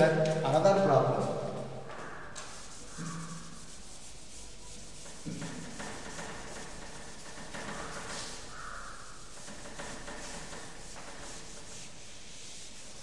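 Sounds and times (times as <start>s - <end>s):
duster rubbing on chalkboard: 0.0s - 13.0s.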